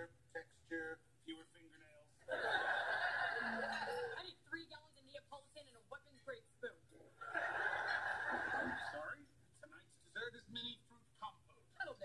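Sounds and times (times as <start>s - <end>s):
laughter: 2.2s - 4.2s, 7.2s - 9.1s.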